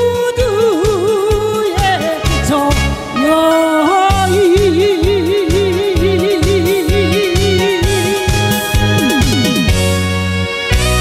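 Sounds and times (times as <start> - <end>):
woman singing with vibrato: 0.0 - 9.3
backing track with steady beat: 0.0 - 11.0.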